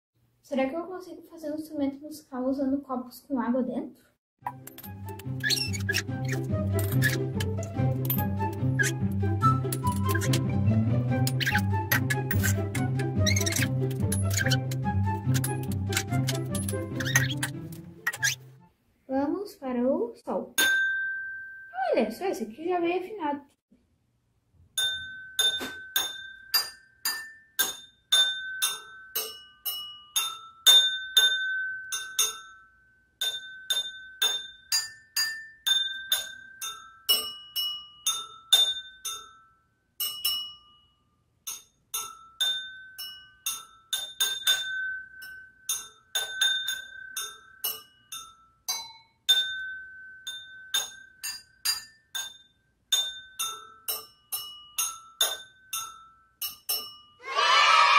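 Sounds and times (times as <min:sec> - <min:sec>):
spoon tapping wine glasses: 0:24.8 - 0:40.6, 0:41.5 - 0:57.1.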